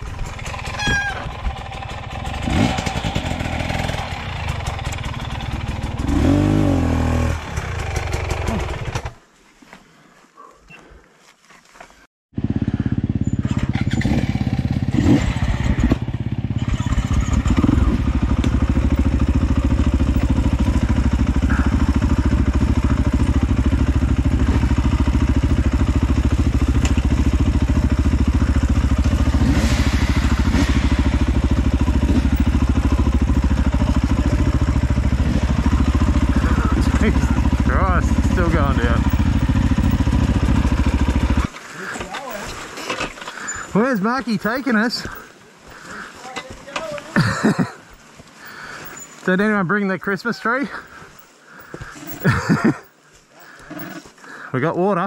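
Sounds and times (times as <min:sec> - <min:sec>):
dirt bike engine running: 0:00.0 - 0:09.2, 0:12.3 - 0:54.4.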